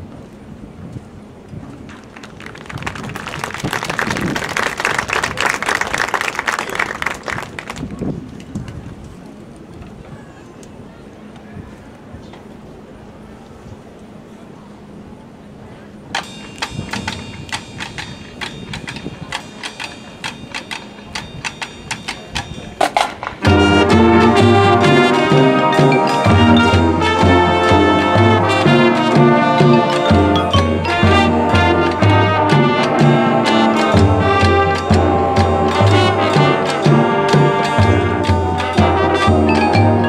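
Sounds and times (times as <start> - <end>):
stadium audience applauding: 1.9 - 8.0
marching percussion ticking clicks: 16.1 - 23.7.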